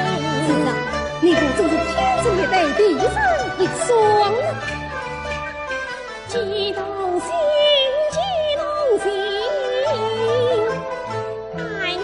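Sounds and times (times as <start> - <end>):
traditional instrumental accompaniment: 0.0 - 12.0.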